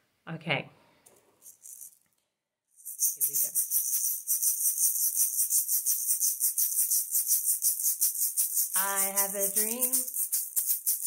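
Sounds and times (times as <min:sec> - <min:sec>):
shaker rattling: 0:01.1 - 0:02.1, 0:02.8 - 0:11.0
call-and-response song: 0:08.8 - 0:10.1.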